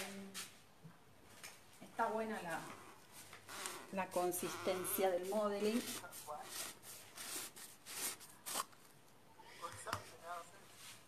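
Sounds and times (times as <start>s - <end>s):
rustling scrapes: 2.4s - 8.8s.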